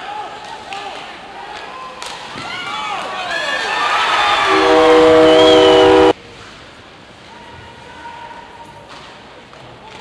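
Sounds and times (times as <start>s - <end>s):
hockey crowd cheering: 0.0s - 6.2s
faint arena noise: 0.0s - 10.0s
arena goal horn: 4.4s - 6.2s.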